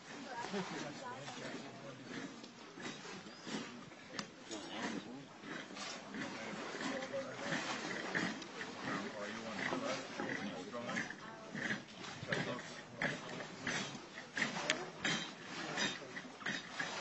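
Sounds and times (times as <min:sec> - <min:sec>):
rough background noise: 0:00.0 - 0:17.0
muffled voices: 0:00.1 - 0:17.0.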